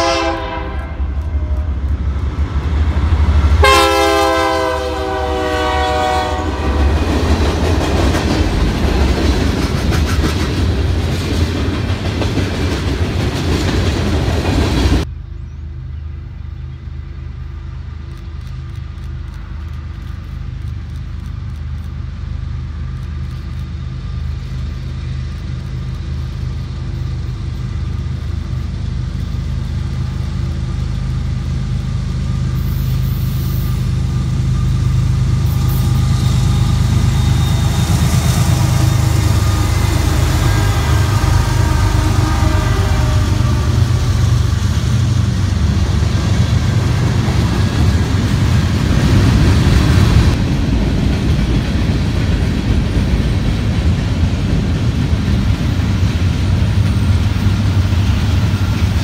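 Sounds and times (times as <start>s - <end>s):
locomotive horn blast: 0.0s - 1.8s, 3.6s - 7.1s, 32.6s - 44.6s
distant diesel train drone: 0.0s - 59.0s
rumble of passing train: 0.0s - 59.0s.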